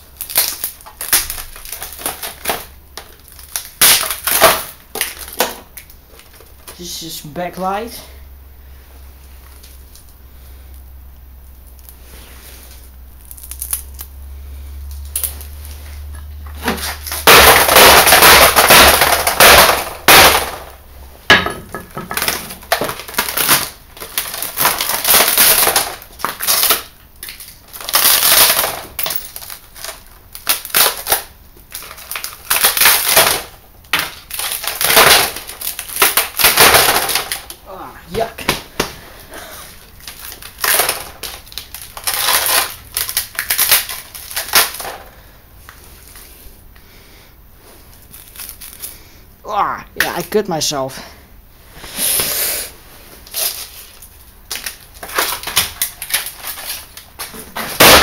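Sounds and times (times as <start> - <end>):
glass and plastic crunching: 0.0 - 7.8, 14.9 - 38.6, 39.8 - 45.2, 47.9 - 49.0, 53.3 - 58.0.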